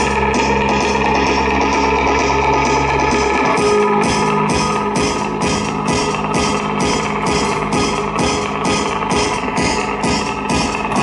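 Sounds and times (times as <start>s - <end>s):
live electronic music: 0.0s - 11.0s
programmed beat: 0.0s - 11.0s.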